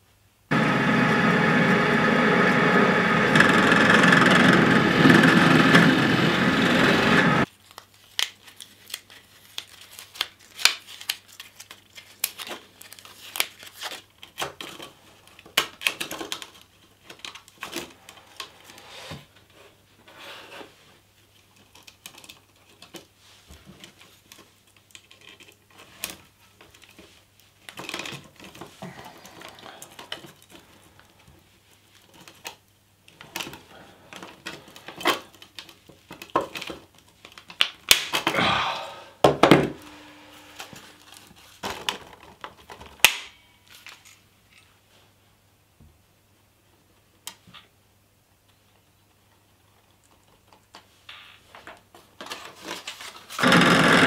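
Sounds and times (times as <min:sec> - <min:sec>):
pop riveter clacks: 0:53.4 - 0:54.0.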